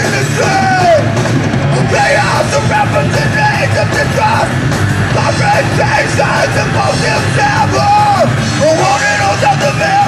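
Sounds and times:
man shouting vocals: 0.0s - 1.2s, 1.8s - 4.5s, 5.2s - 10.0s
bass guitar: 0.0s - 10.0s
distorted electric guitars: 0.0s - 10.0s
drum kit beat: 0.0s - 10.0s.

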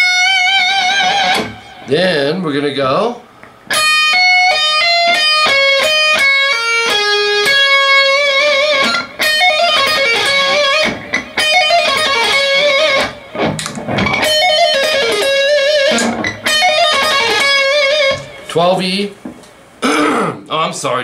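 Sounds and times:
electric guitar lead with vibrato: 0.0s - 1.9s, 3.7s - 18.5s.

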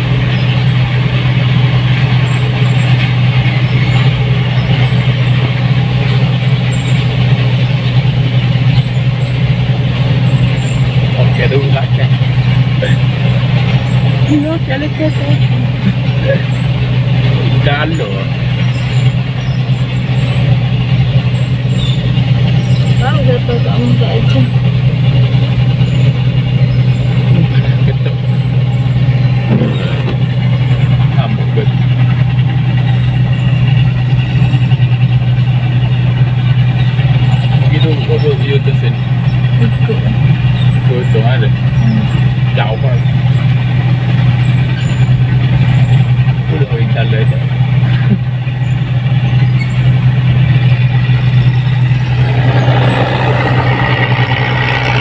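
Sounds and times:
diesel engine droning: 0.0s - 55.0s.

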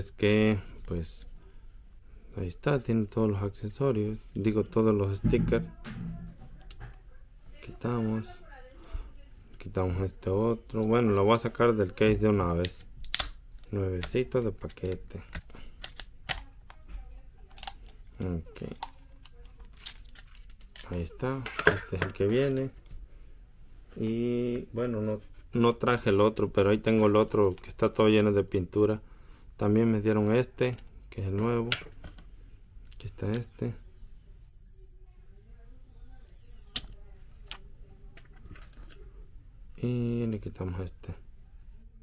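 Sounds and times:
plastic film crackling: 17.4s - 21.2s.

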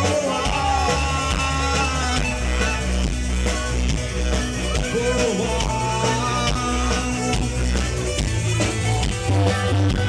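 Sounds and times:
bass notes: 0.0s - 10.0s
drum beat: 0.0s - 10.0s
keyboard: 0.0s - 10.0s.

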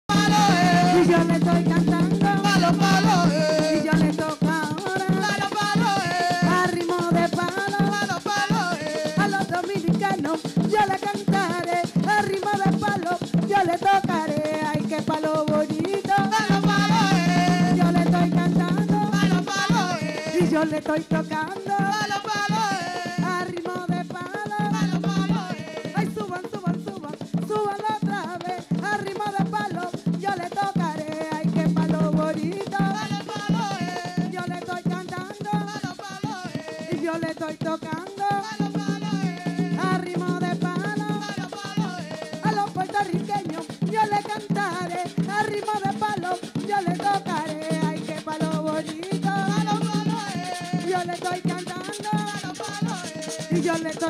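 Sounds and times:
hand drums and percussion: 0.0s - 54.0s
women singing: 0.1s - 54.0s.

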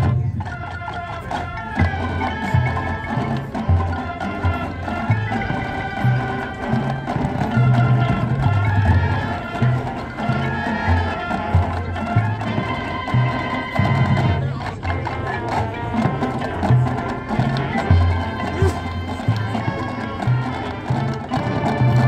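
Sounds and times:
drums: 0.0s - 22.0s
marching band playing: 0.0s - 22.0s.

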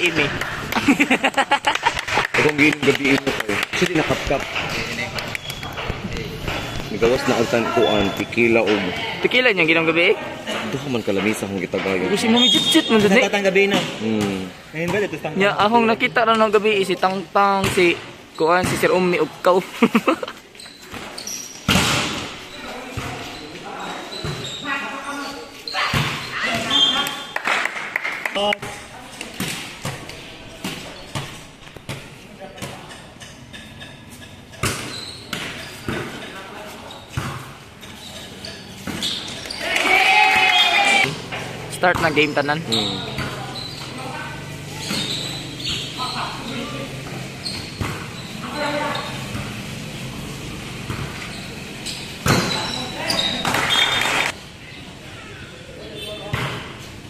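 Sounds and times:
voices of players and onlookers: 0.0s - 57.0s
people calling out: 39.4s - 41.1s
volleyball slap: 53.4s - 54.4s.

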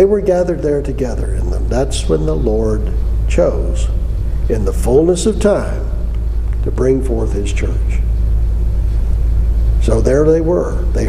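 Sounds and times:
man talking: 0.0s - 8.1s, 9.8s - 11.0s
steady low hum: 0.0s - 11.0s.

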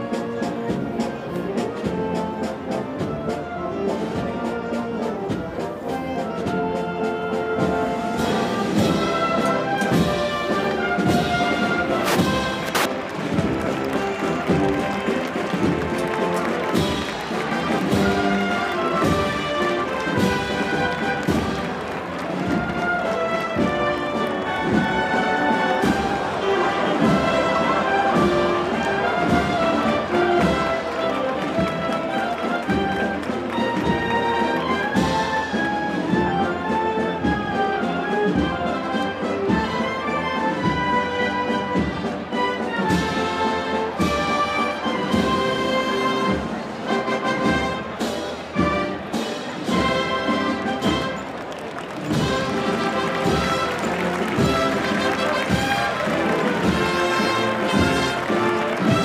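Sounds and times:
brass band playing slow march: 0.0s - 59.0s.

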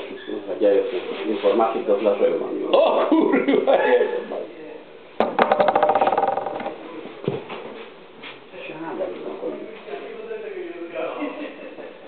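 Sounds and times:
knock close to microphone: 5.2s - 6.8s.

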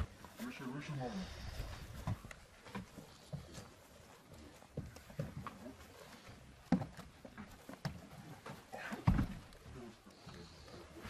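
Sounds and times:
gear and clothing rustling: 0.0s - 11.0s
footsteps in a van: 1.4s - 11.0s
knocks and bumps: 6.6s - 9.8s.

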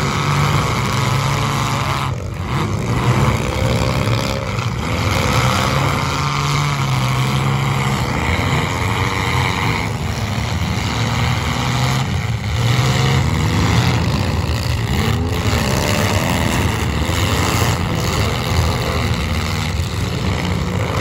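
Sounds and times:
car engines revving: 0.0s - 21.0s.

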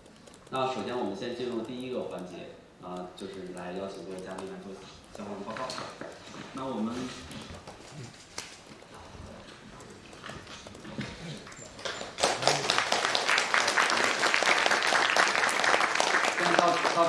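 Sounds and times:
audience applause: 11.5s - 17.0s.

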